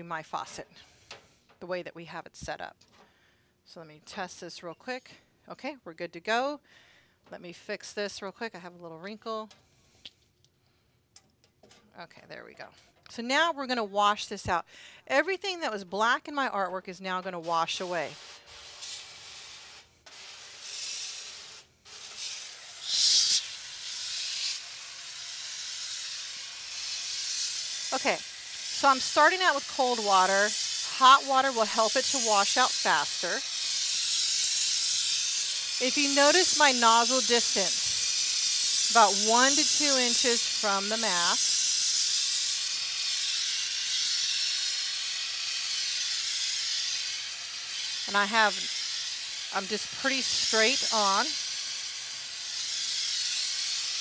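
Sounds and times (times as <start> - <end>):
hose sprayer hissing: 17.5 - 54.0.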